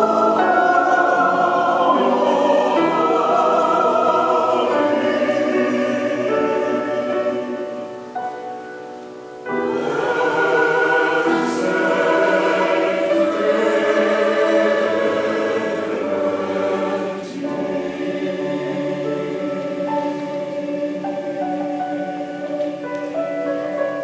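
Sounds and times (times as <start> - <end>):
choir singing sustained chords: 0.0 - 24.0.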